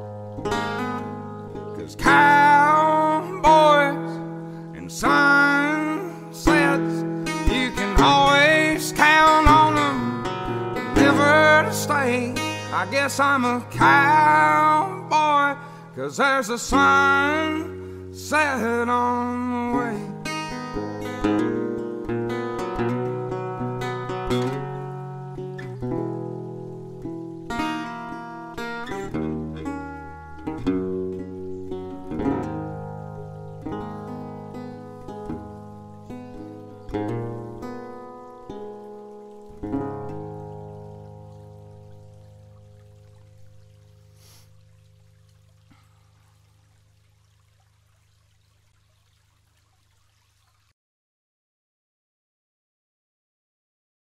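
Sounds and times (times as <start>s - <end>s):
acoustic guitar picking and strumming: 0.0s - 45.4s.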